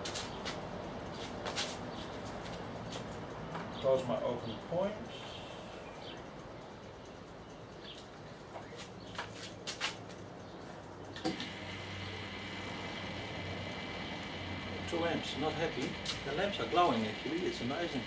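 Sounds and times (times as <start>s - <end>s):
transformer mains hum: 10.1s - 18.0s
transformer switching on thump: 11.2s - 13.2s
high-pitched whine: 11.2s - 18.0s.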